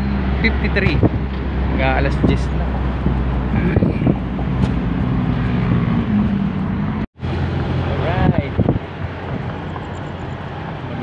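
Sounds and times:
road noise: 0.0 - 11.0
vehicle engine hum: 0.0 - 11.0.

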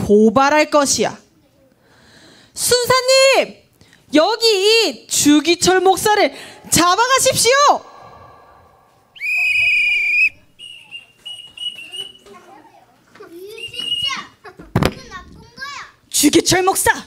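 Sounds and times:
whistle blasts: 7.6 - 12.2
children chattering: 9.2 - 14.6.

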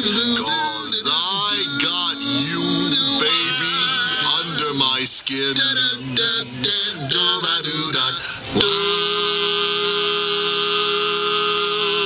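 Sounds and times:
male voices singing sustained chord: 0.0 - 12.0.

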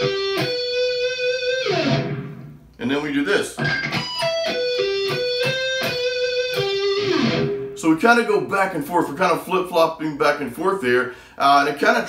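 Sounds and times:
electric guitar playing single notes: 0.0 - 2.7, 3.6 - 8.5.

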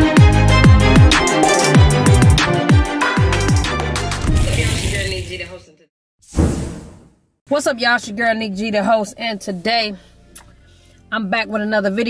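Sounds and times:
whoosh sound effect: 6.3 - 7.2.

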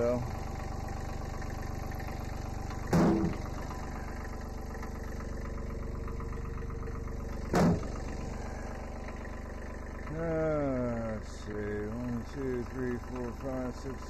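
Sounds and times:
diesel tractor idling: 0.0 - 14.0.

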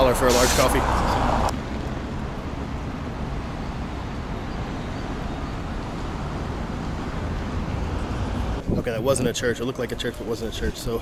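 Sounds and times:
street and traffic noise: 0.0 - 11.0.

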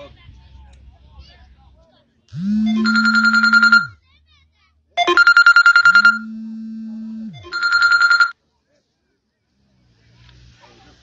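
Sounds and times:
fast-trilling electronic ringing tone: 2.6 - 4.0, 5.0 - 8.3.

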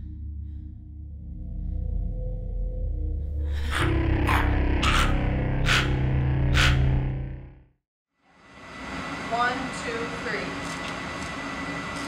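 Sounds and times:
low music drone: 0.0 - 7.8.

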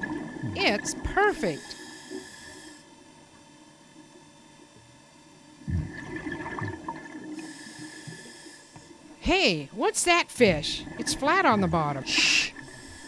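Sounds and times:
regulator hissing inhalation: 1.6 - 2.9, 7.4 - 9.0, 12.1 - 13.0
gurgling rush of exhaled bubbles: 5.7 - 7.4.

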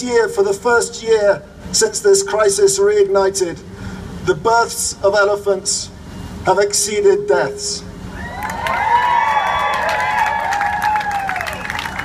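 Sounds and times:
crowd cheering and whooping: 8.1 - 12.0
scattered clapping: 9.4 - 12.0.

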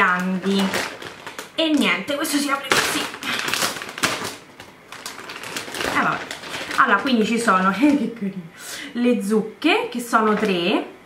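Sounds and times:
packaging rustling: 0.0 - 8.1.

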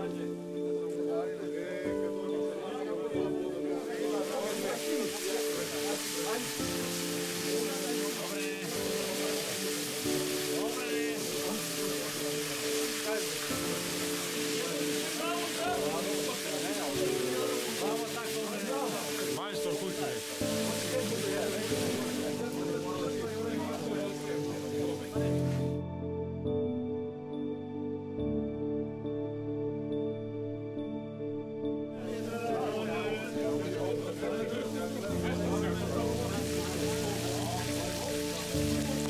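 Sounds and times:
background music: 0.0 - 39.0
bacon sizzling in a pan: 4.2 - 22.5, 34.6 - 39.0.

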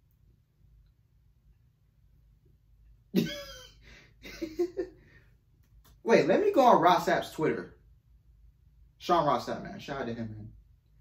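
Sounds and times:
man coughing: 3.2 - 3.8.

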